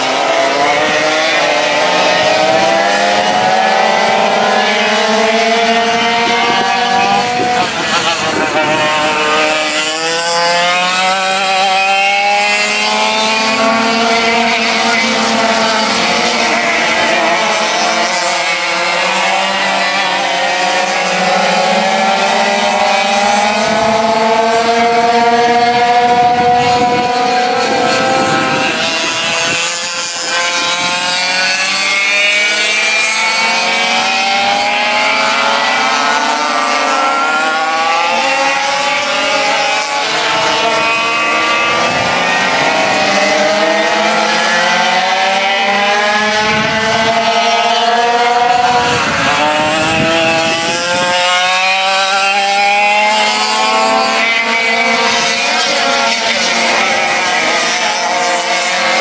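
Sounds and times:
kart engines racing: 0:00.0 - 0:59.0.

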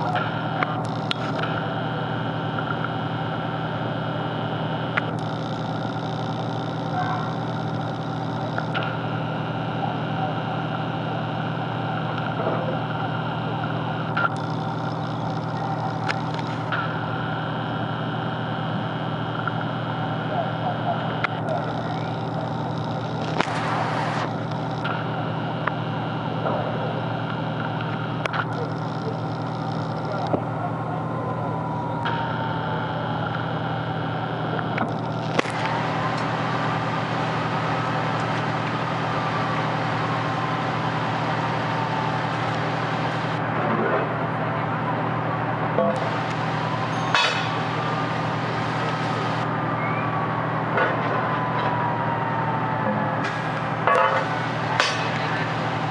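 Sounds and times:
sharp clicks: 0:00.0 - 0:01.7, 0:04.9 - 0:09.2, 0:14.0 - 0:17.1, 0:34.5 - 0:43.4
distant siren: 0:00.0 - 0:55.9
fire engine idling: 0:00.0 - 0:55.9.

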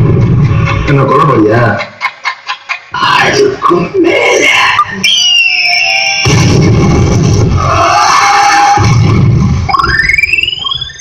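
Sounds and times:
synthesizer sweep rising in pitch: 0:08.8 - 0:11.0.

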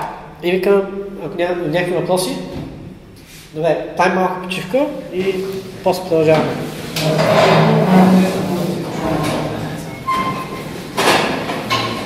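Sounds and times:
chairs and desks scraping: 0:05.2 - 0:12.0
brief squeaks: 0:09.9 - 0:10.7.

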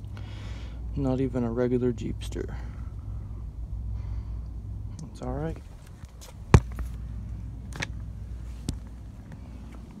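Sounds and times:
low steady rumble: 0:00.0 - 0:10.0.

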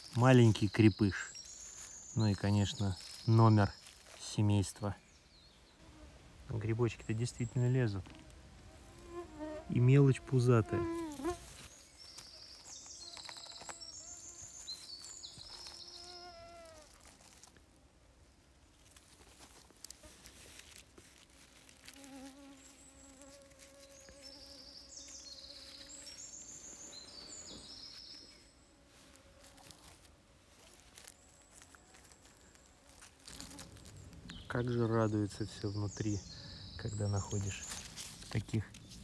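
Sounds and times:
songbirds trilling: 0:00.0 - 0:05.9, 0:09.8 - 0:16.6, 0:22.4 - 0:28.6, 0:33.5 - 0:39.0
fly buzzing: 0:08.0 - 0:17.5, 0:21.5 - 0:34.2.

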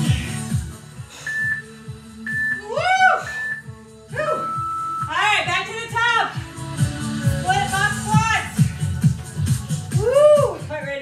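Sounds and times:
workout music with steady beat: 0:00.0 - 0:11.0
workout timer beeping: 0:01.2 - 0:05.4.

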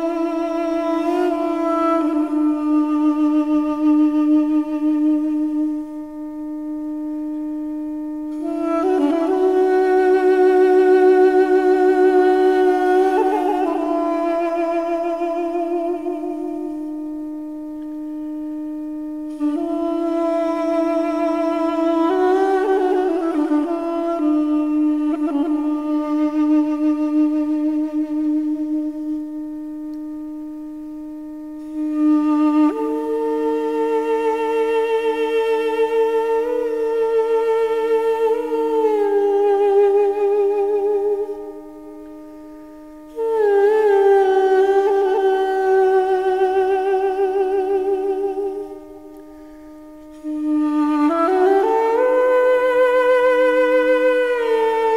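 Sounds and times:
duduk long steady note: 0:00.0 - 0:54.9.

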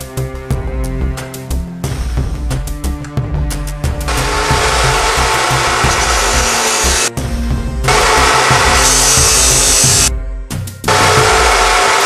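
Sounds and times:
background music: 0:00.0 - 0:12.0
cut-off saw grinding through metal: 0:04.1 - 0:07.1, 0:07.9 - 0:10.1, 0:10.9 - 0:12.0.

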